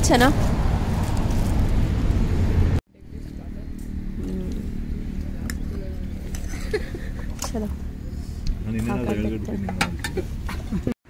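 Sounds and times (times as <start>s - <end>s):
loud outdoor rumble: 0.0s - 10.9s
low steady hum: 0.0s - 10.9s
faint voices: 3.0s - 10.1s.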